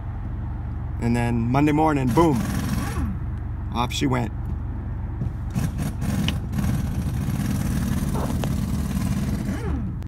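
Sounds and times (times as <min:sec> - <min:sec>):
car engine rumble from inside: 0:00.0 - 0:10.0.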